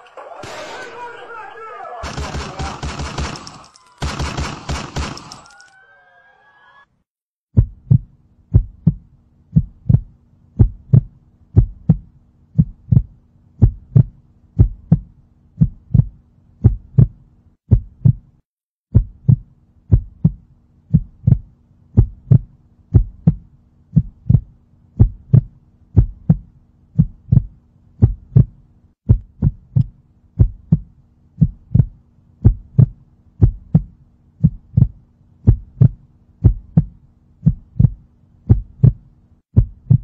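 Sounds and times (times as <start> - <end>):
heartbeat thumps: 7.5 - 40.0.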